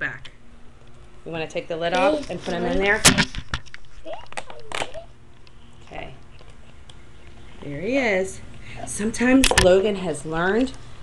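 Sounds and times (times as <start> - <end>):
voice: 1.3 - 3.2, 7.6 - 10.8.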